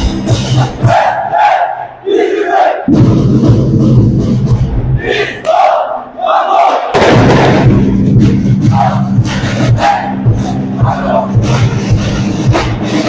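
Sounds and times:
drums and low brass: 0.0s - 1.7s, 2.8s - 5.8s, 6.6s - 13.0s
group shouting in unison: 0.6s - 2.9s, 5.0s - 7.0s, 9.7s - 10.2s.

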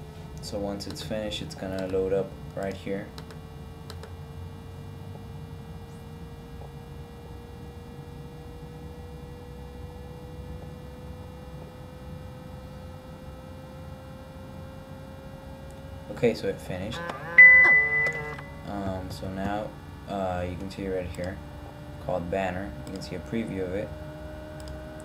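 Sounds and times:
computer hum: 0.0s - 25.0s
faint thin whine: 16.1s - 21.4s.

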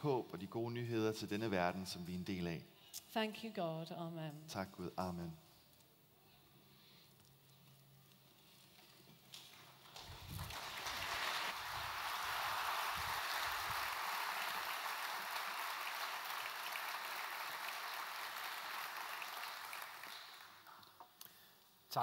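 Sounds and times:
large audience applauding: 9.6s - 20.9s.

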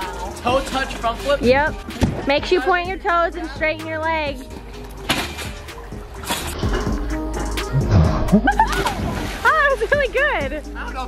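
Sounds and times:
quiet background music: 0.0s - 11.0s.

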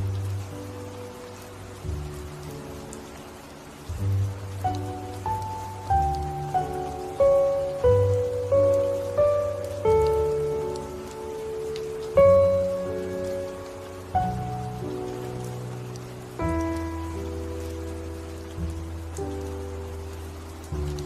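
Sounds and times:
falling rain: 0.0s - 21.0s
slow piano music: 0.0s - 21.0s.

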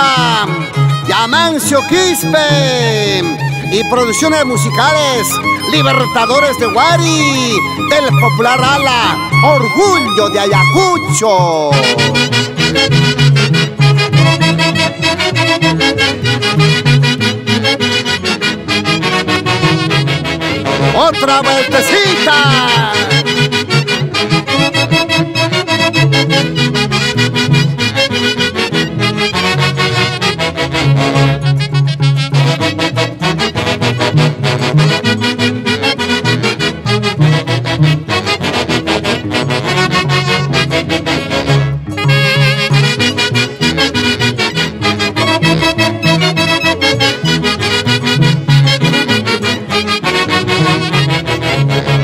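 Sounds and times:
saxophones playing melody: 0.0s - 52.0s.

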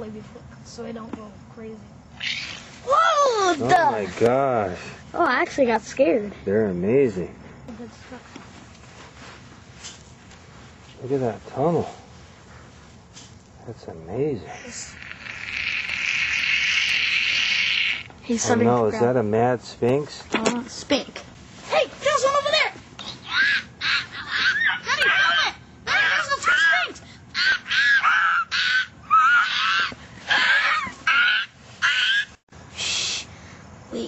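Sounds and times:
breathy hiss: 8.8s - 13.4s, 32.6s - 34.0s
child shrieking: 23.0s - 32.4s
child hissing: 29.3s - 33.4s.

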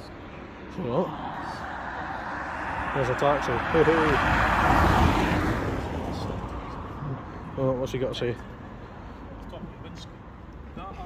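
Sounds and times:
car passing by: 0.8s - 7.0s.

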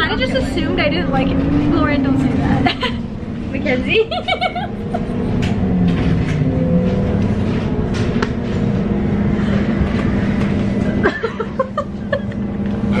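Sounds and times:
bus drivetrain hum: 0.0s - 13.0s.

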